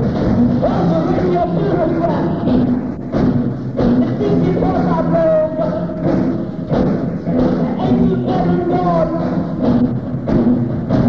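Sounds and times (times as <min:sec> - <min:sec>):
person singing: 0:00.0 - 0:02.7, 0:03.8 - 0:06.3, 0:07.3 - 0:09.8
hard drum hits: 0:00.0 - 0:11.0.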